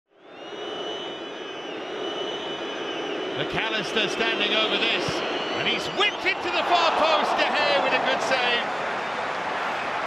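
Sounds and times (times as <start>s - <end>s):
stadium crowd hum: 0.1s - 10.0s.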